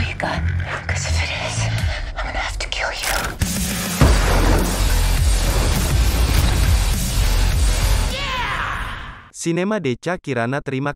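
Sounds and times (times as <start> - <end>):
woman whispering: 0.0 - 3.4
dark trailer music: 0.0 - 8.2.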